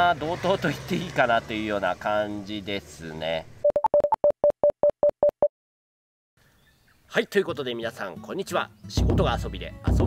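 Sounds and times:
short electronic beeps: 0:03.6 - 0:05.5.

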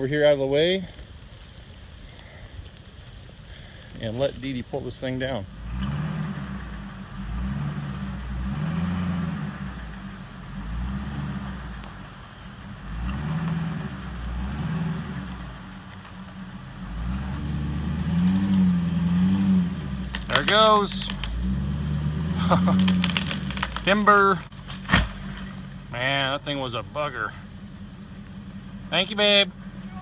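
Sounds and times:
truck engine revving under load: 0:05.5 - 0:30.0.

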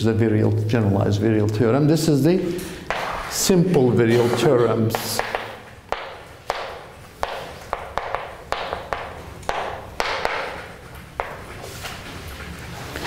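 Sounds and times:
chalk tapping on blackboard: 0:04.9 - 0:11.5.

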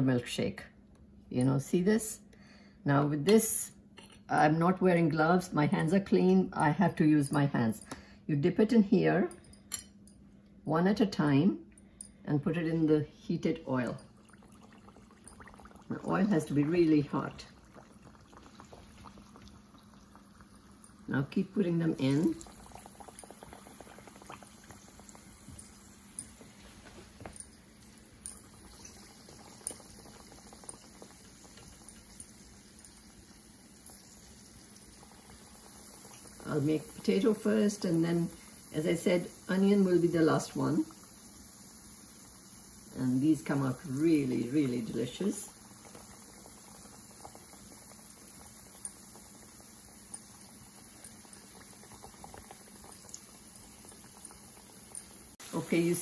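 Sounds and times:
hot oil sizzling: 0:14.0 - 0:56.0.

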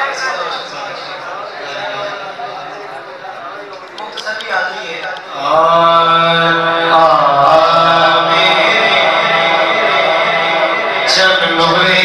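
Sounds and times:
man singing into microphone: 0:05.2 - 0:12.0.

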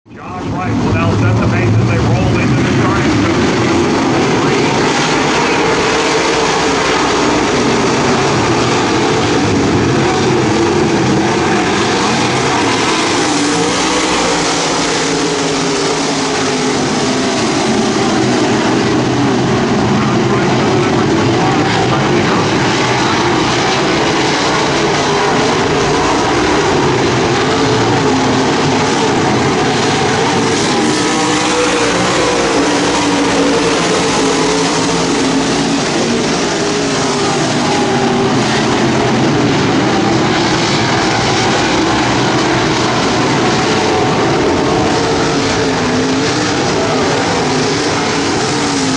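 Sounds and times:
race car engines droning: 0:00.1 - 0:48.9.

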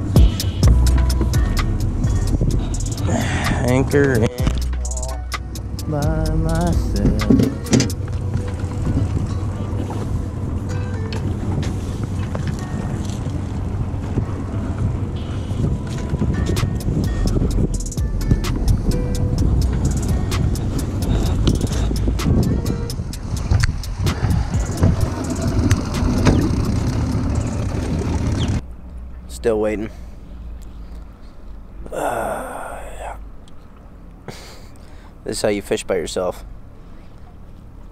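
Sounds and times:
background music: 0:00.0 - 0:28.5
wind buffeting microphone: 0:00.0 - 0:28.6
anchor line and gear rattling: 0:00.0 - 0:31.8.

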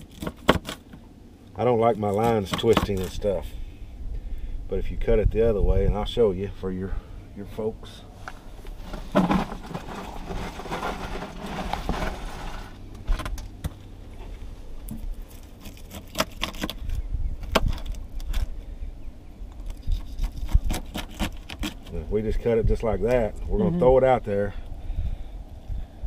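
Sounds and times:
rustling: 0:08.1 - 0:17.0.

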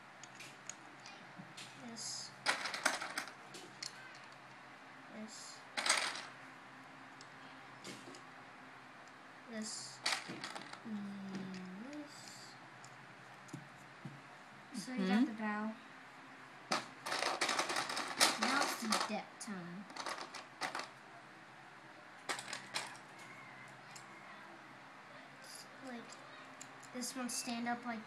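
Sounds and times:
plastic bricks clattering: 0:02.5 - 0:04.4, 0:05.8 - 0:06.3, 0:10.0 - 0:10.8, 0:16.7 - 0:19.1, 0:19.9 - 0:21.0, 0:22.2 - 0:23.1.

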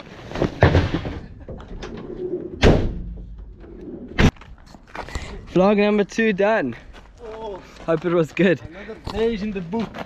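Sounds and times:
van door slamming: 0:02.6 - 0:03.2.

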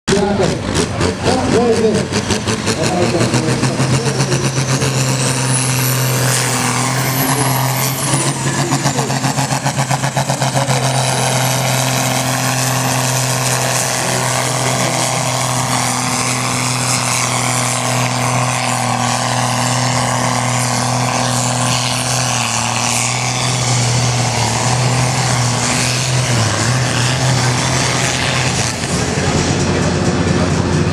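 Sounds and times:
diesel engine droning under load: 0:00.1 - 0:30.9.

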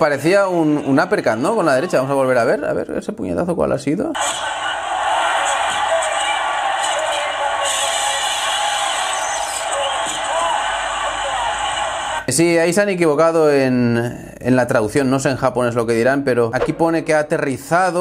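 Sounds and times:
commentator speaking: 0:00.0 - 0:04.5, 0:05.3 - 0:08.5, 0:12.2 - 0:18.0
background noise: 0:00.0 - 0:18.0.

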